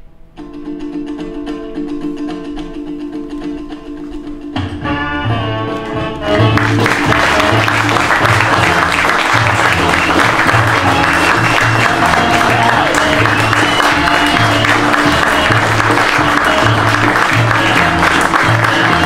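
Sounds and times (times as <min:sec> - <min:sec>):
loud music with bass line: 0:04.5 - 0:19.0
audience applauding: 0:06.3 - 0:19.0.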